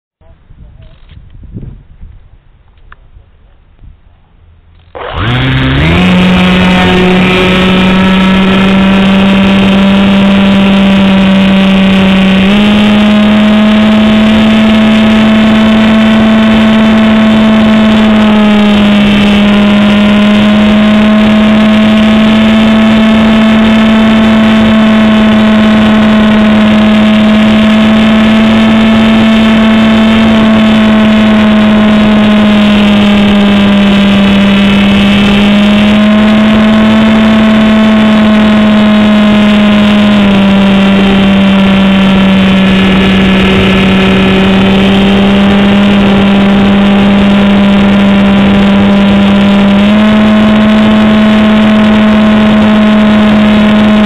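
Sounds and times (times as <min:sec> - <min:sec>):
model airplane motor buzzing: 0:04.8 - 0:54.0.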